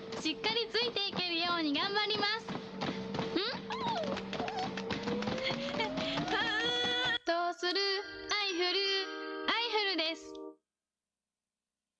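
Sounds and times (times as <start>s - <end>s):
small dog whining: 3.4s - 5.1s.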